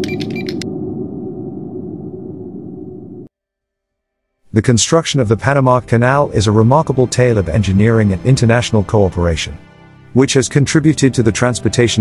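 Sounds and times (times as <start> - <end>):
low humming drone: 0.0 - 3.3.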